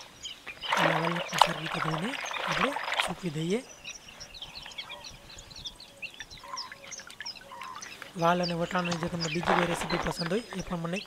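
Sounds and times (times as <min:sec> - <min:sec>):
small birds chirping: 0:00.0 - 0:11.0
water splashing and dripping: 0:00.5 - 0:03.6, 0:06.2 - 0:10.8.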